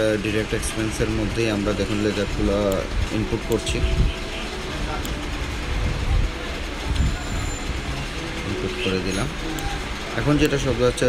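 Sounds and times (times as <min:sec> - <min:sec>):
narration: 0:00.0 - 0:11.0.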